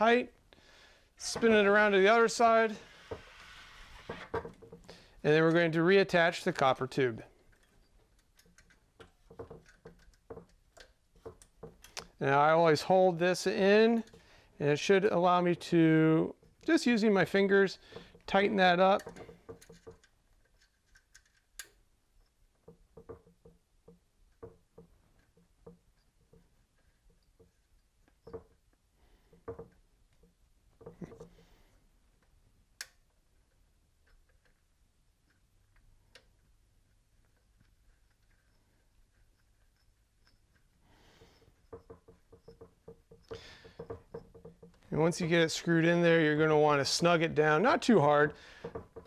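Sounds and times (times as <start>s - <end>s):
faint clicks and taps of fittings: 4.2s - 12.5s, 13.3s - 15.4s, 16.3s - 49.0s.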